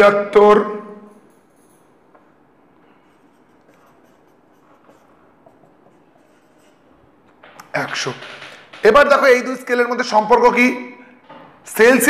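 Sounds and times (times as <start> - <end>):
marker scratching on whiteboard: 2.8 - 9.0.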